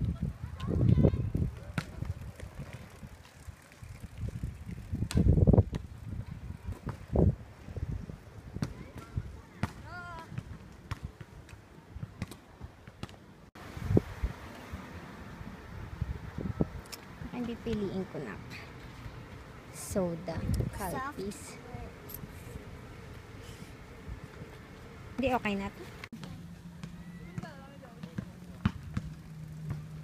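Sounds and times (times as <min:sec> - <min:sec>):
steady outdoor ambience: 0:00.0 - 0:30.0.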